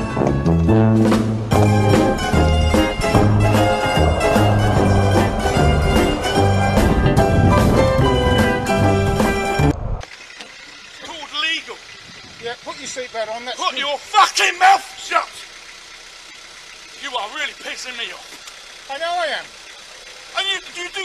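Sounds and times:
car idling: 0.4 - 21.0
person speaking in loud outbursts: 13.5 - 15.5.

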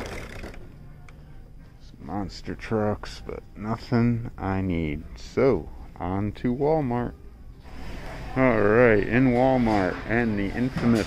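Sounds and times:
person speaking: 8.0 - 11.0.

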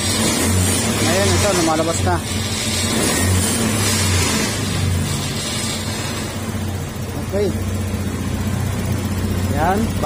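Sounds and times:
scooter engine idling high: 0.0 - 10.0.

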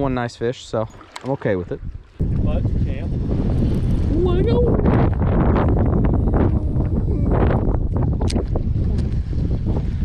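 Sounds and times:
wind buffeting microphone: 1.6 - 10.0.

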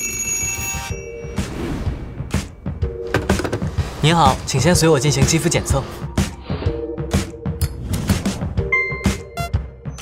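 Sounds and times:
telephone bell ringing: 0.0 - 1.5.

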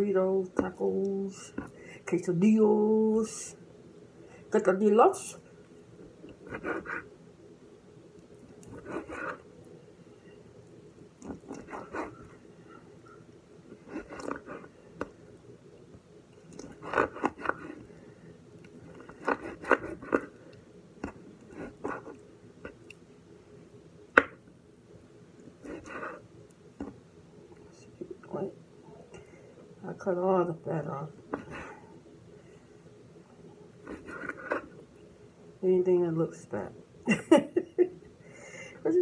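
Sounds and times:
faint steady hum: 0.0 - 39.0.

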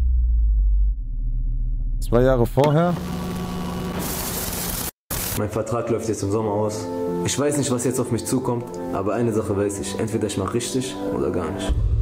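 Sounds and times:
deep bass drone: 0.0 - 4.0.

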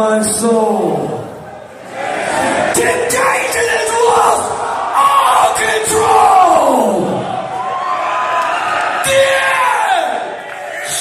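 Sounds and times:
crowd noise and shouting: 0.0 - 11.0.

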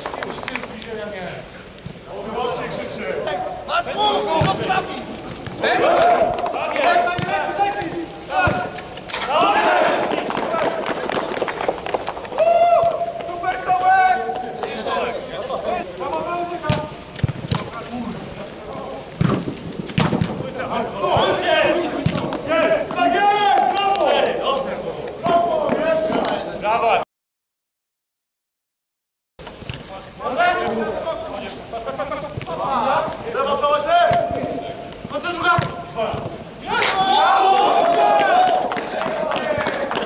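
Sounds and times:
men calling out: 2.2 - 10.3, 30.2 - 39.9
ball being kicked: 4.3 - 4.8, 7.1 - 8.8, 16.7 - 17.8, 19.2 - 20.4, 35.4 - 36.4.

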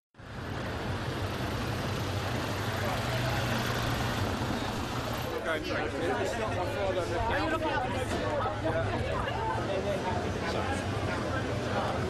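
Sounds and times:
vehicle engines rumbling: 0.2 - 12.0
people's voices: 2.3 - 12.0.

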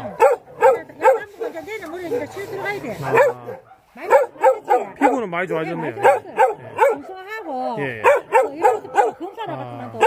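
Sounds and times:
dog yelping barks: 0.0 - 7.4, 8.0 - 10.0.

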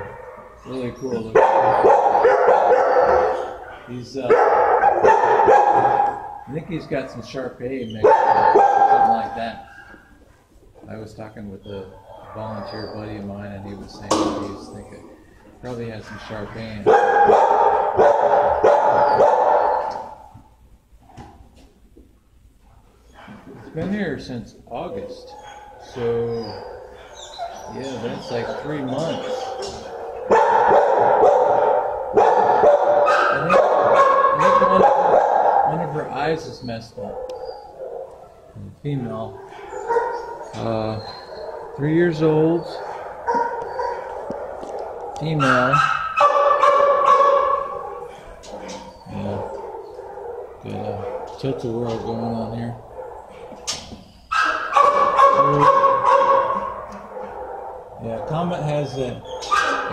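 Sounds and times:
dog barking: 0.0 - 10.0, 12.0 - 20.3, 22.7 - 23.9, 24.9 - 36.4, 37.0 - 59.9.

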